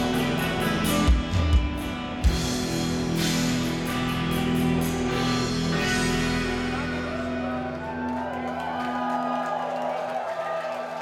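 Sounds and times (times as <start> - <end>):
rock band held note: 0.0 - 8.0
audience cheering and whooping: 6.7 - 11.0.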